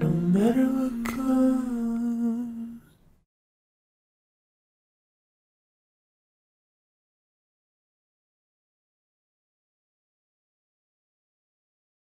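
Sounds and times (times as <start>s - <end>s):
person singing long final note: 0.0s - 2.8s.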